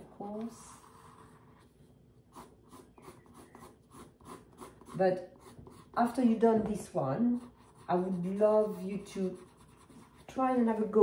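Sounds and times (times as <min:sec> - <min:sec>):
pencil scratching on paper: 0:00.6 - 0:11.0.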